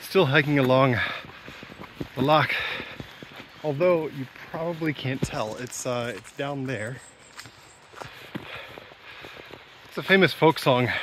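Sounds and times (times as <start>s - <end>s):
footsteps on wet forest track: 0.0s - 11.0s
steady background rustle: 0.0s - 11.0s.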